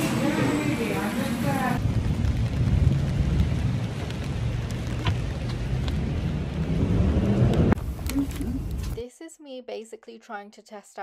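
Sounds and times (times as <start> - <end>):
low rumble: 0.2 - 9.0
rain pattering on plastic umbrella: 1.6 - 9.0.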